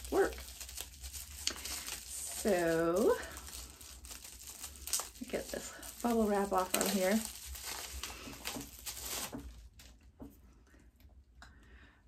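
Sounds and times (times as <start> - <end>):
bubble wrap crinkling: 0.0 - 10.4.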